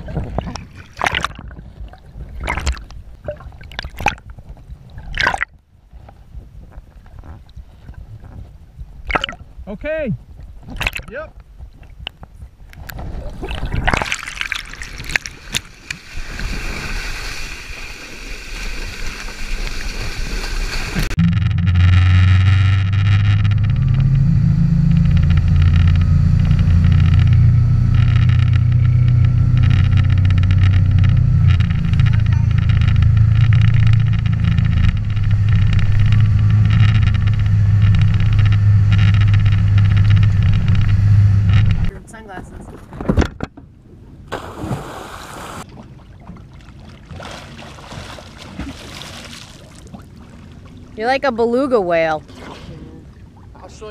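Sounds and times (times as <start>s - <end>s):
water splashes: 0.0s - 5.6s, 9.0s - 9.5s, 10.7s - 11.2s, 12.8s - 21.2s, 44.3s - 53.9s
water rushing: 13.3s - 21.2s
boat engine running: 17.4s - 42.7s.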